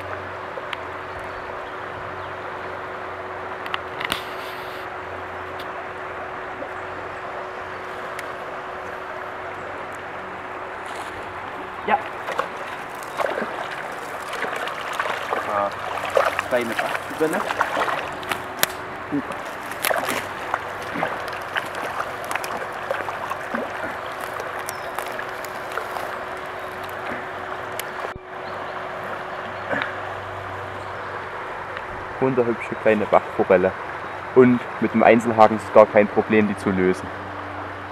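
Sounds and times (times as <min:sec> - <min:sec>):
stream water rushing: 0:00.0 - 0:37.9
fish splashing at surface: 0:11.9 - 0:28.1.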